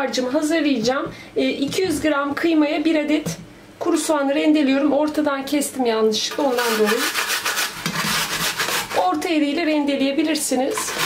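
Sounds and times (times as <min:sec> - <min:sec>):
onion grated on metal grater: 0:06.2 - 0:09.4, 0:10.6 - 0:11.0.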